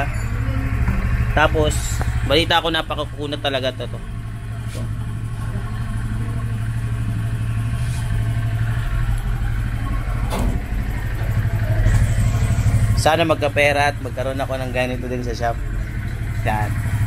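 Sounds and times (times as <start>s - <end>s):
scooter engine running: 0.0s - 17.0s.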